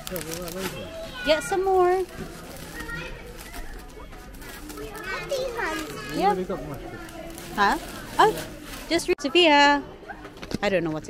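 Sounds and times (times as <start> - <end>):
children's voices: 2.2 - 8.5
child talking in high voice: 4.8 - 6.3.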